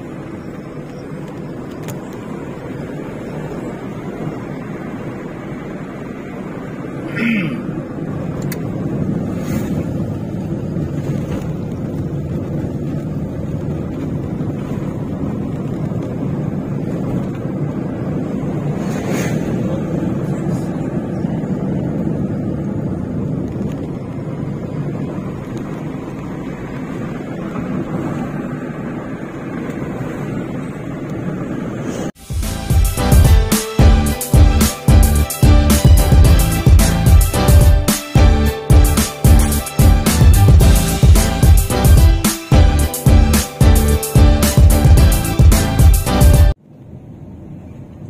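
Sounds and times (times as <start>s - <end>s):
vehicle engine and road noise: 0.0s - 48.0s.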